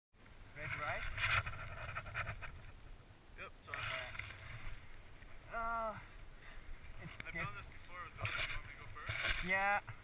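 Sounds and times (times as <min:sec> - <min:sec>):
person calling out: 0:05.5 - 0:06.1.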